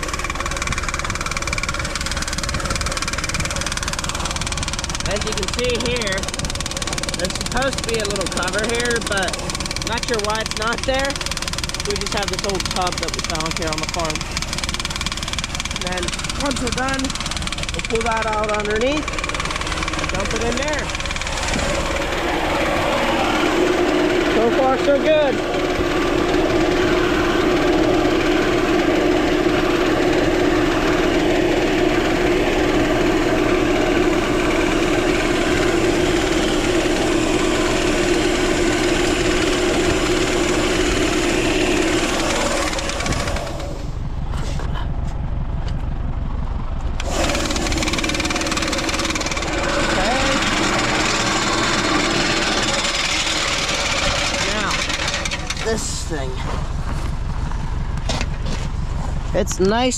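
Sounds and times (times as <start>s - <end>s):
machinery running: 0.0s - 59.9s
strong steady hum: 0.0s - 59.9s
seed pouring into a hopper: 47.0s - 55.5s.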